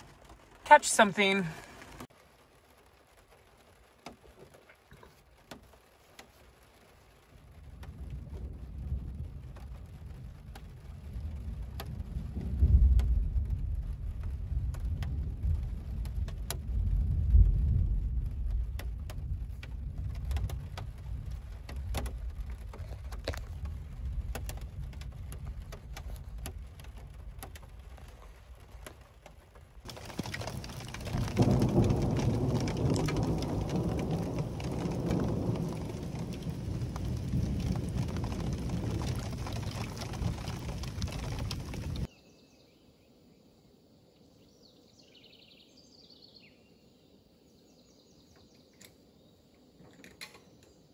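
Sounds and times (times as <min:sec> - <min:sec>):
rain drumming on car roof: 0:00.0 - 0:42.1
rolling thunder: 0:07.4 - 0:28.7, 0:29.8 - 0:42.1.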